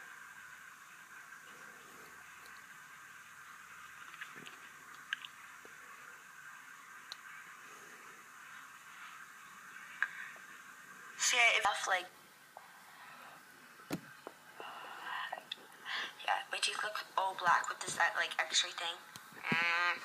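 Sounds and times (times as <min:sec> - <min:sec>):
faint hiss: 0:00.0 - 0:20.0.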